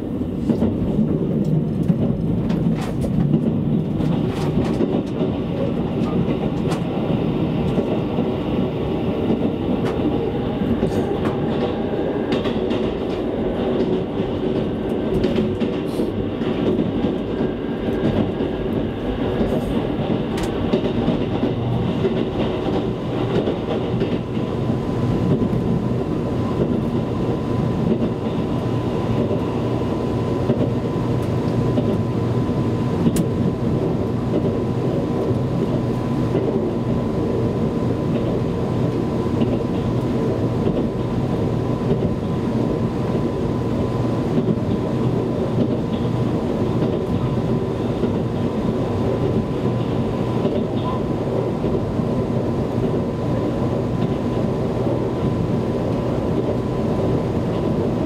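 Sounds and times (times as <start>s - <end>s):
train cabin rumble: 0.0s - 58.0s.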